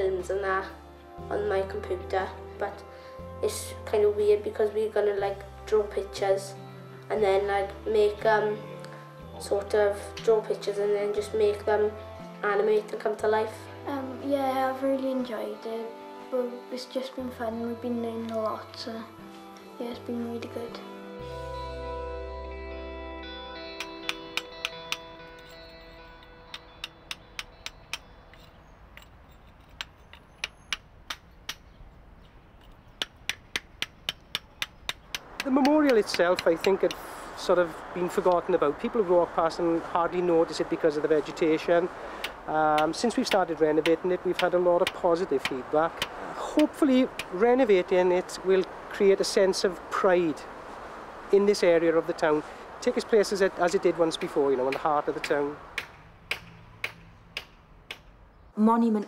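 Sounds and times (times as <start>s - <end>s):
hammer striking chisel on stone: 23.8s - 25.5s, 26.5s - 31.7s, 32.6s - 37.0s, 42.2s - 47.4s.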